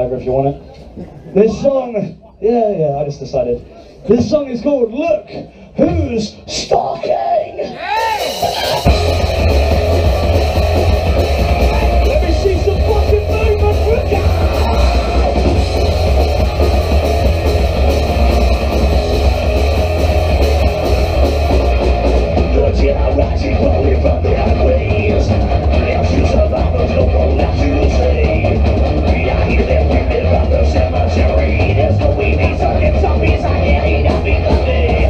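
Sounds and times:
live punk band playing rock: 7.9 - 35.0.

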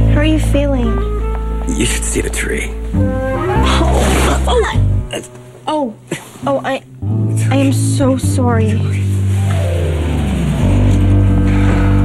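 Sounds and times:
tone sliding down in pitch: 3.0 - 4.7
steady low bass note: 7.0 - 12.0.

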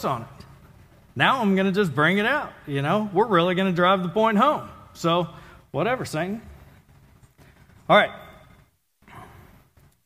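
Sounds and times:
man speaking: 0.0 - 0.5, 1.1 - 6.6, 7.8 - 8.6.

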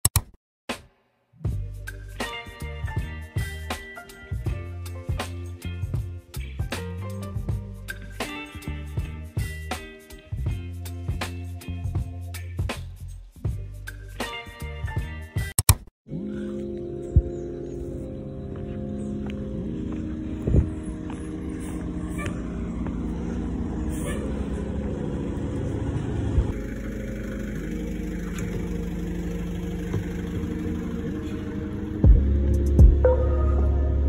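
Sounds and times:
bus engine droning: 16.1 - 34.0.

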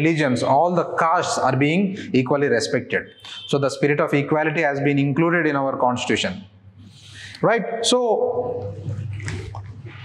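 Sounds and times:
man speaking: 0.0 - 6.4, 7.3 - 8.8.

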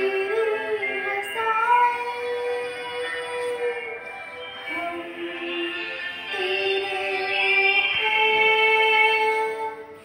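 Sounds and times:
girl singing devotional song: 0.0 - 4.0, 4.6 - 10.0.

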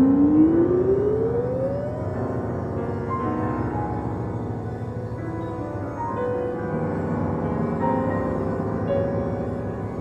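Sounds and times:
electronic instrument upward glide: 0.0 - 2.3
sustained notes: 0.0 - 2.5.

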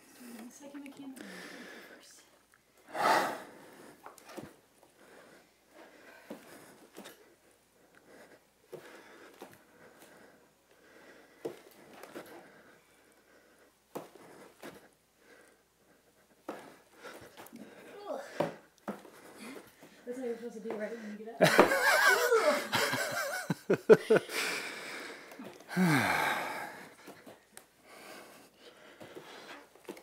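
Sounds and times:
heavy breathing and sighing: 0.0 - 30.0.

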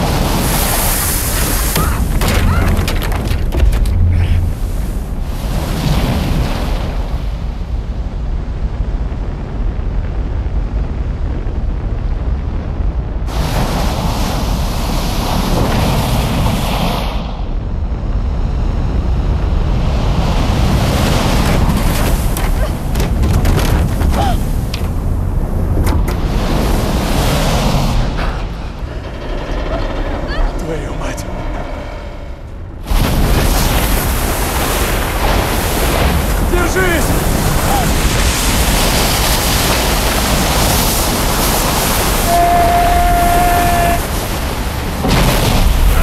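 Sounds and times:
deep rumble: 0.0 - 16.6, 17.4 - 46.0
roar of rushing water: 0.0 - 17.1, 18.6 - 46.0.

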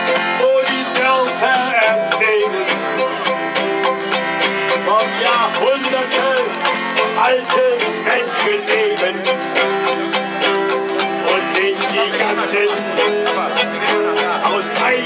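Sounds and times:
person singing: 0.0 - 15.0
strummed strings: 0.0 - 15.0
violin melody: 0.0 - 15.0.

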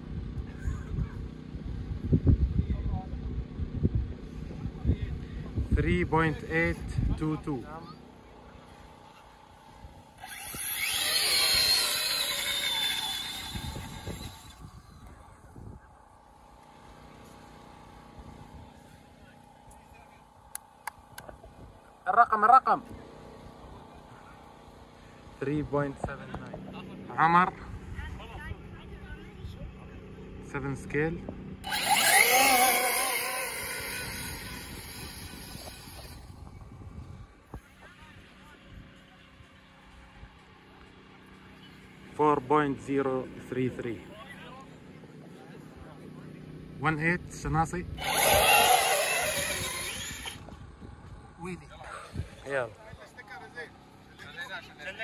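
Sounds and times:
rc car motor whine: 10.1 - 15.2, 31.6 - 36.4, 48.0 - 50.5.

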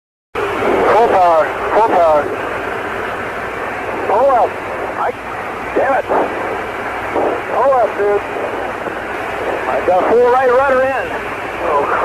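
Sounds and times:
radio open-mic noise: 0.5 - 12.0
person speaking over radio: 0.8 - 2.4, 4.0 - 6.6, 7.2 - 12.0.

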